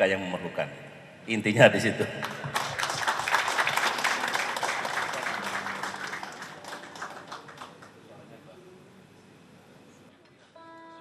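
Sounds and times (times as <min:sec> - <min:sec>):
audience applauding: 0:02.2 - 0:08.2.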